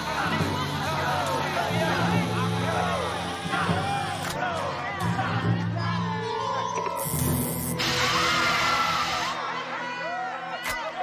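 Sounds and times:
shouting voices: 0.0s - 6.2s
music: 0.0s - 11.0s
gas hissing from canister: 7.0s - 9.4s.

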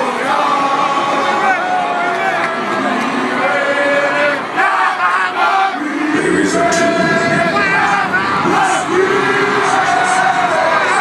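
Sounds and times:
group of players yelling: 0.0s - 11.0s.

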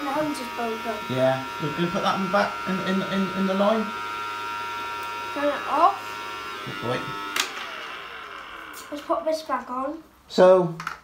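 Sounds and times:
toy vacuum motor whirring: 0.0s - 9.9s.

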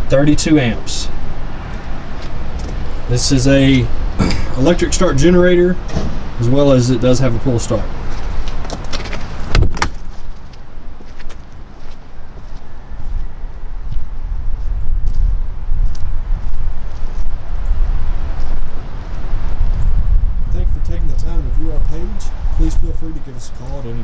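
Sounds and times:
wind rumble on microphone: 0.0s - 24.0s
metal door banging shut: 5.8s - 6.3s, 9.0s - 10.1s.

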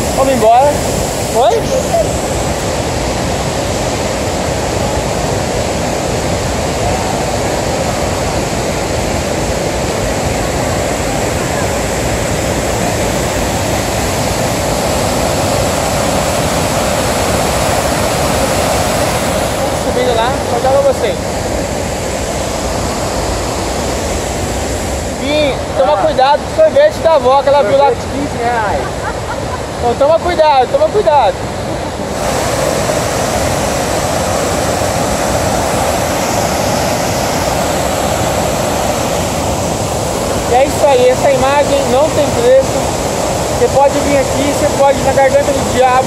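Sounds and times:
voices: 0.0s - 2.7s
waterfall rushing: 0.0s - 46.0s.

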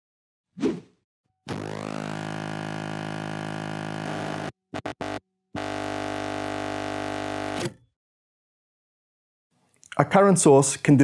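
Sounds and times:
steady electronic buzzing tone: 1.5s - 7.6s.

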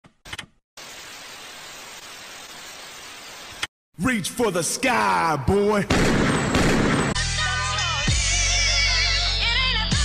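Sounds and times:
static-like hiss: 0.8s - 3.7s.

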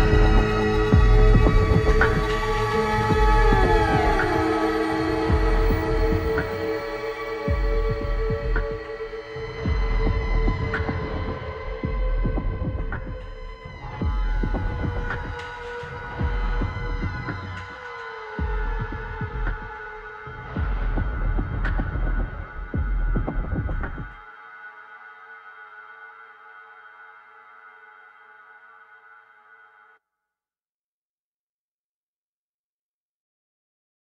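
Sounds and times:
throbbing low synth thumps: 0.0s - 15.4s, 16.1s - 17.6s, 18.4s - 19.8s, 20.5s - 24.2s
held synth chords: 0.0s - 24.2s.

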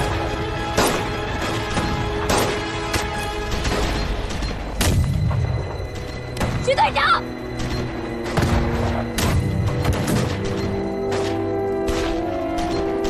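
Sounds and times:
dramatic film music: 0.0s - 13.0s.

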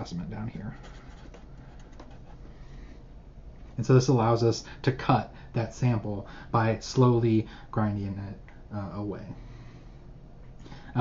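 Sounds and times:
low room hum: 0.0s - 11.0s
marker scratching on paper: 0.7s - 2.4s.

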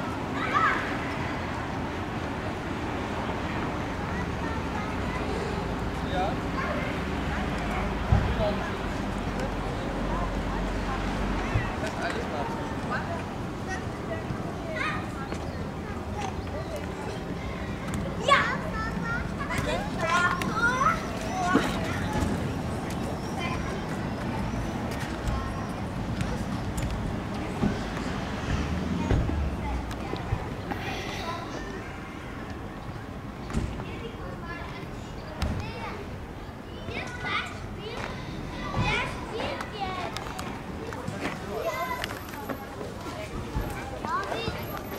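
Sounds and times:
children shouting and calling out: 0.0s - 44.9s.

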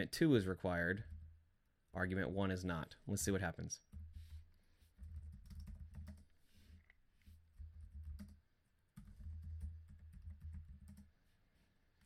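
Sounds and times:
typing on computer keyboard: 5.0s - 6.3s, 7.5s - 8.4s, 9.0s - 11.1s.

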